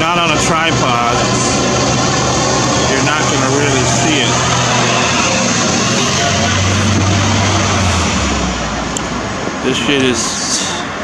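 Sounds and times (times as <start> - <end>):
vehicle engine running: 0.0 - 10.7.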